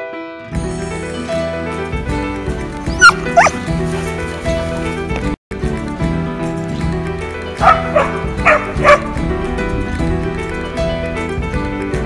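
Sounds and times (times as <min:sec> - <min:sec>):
background music: 0:00.0 - 0:12.0
dog barking: 0:03.0 - 0:03.6, 0:07.6 - 0:09.1.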